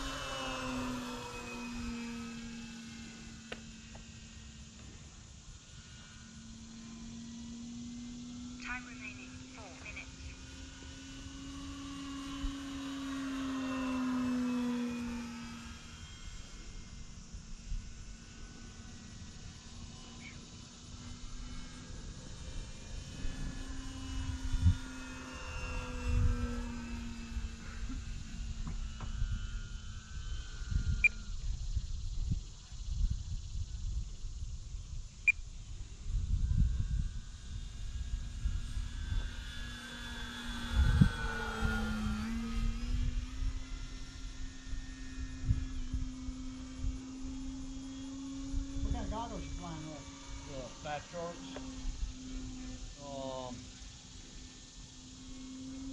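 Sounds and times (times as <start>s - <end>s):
model plane motor droning: 0.0s - 55.9s
wind buffeting microphone: 22.5s - 53.0s.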